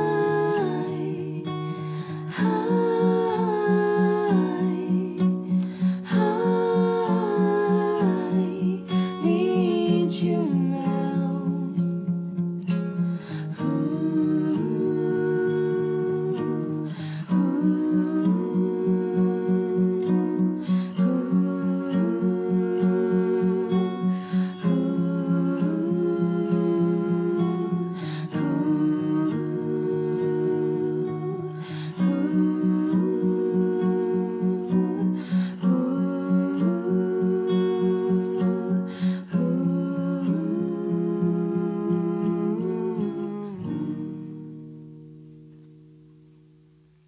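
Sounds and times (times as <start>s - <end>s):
person humming: 0.0s - 11.8s, 13.5s - 44.3s
voices singing wordless notes: 0.0s - 44.6s
acoustic guitar: 0.0s - 47.0s
singer breathing: 1.7s - 2.3s, 5.5s - 6.1s, 13.0s - 13.6s, 28.0s - 28.3s, 31.6s - 32.0s, 35.2s - 35.6s, 38.9s - 39.3s.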